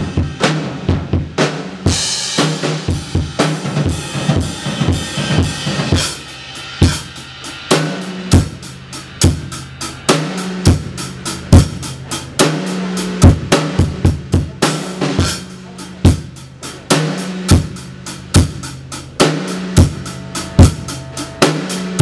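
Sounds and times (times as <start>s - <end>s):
drum kit kick and snare: 0.0s - 22.0s.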